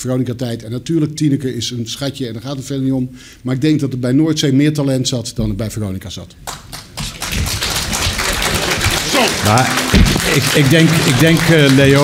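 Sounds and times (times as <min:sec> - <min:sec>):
audience applauding: 0:06.5 - 0:12.0.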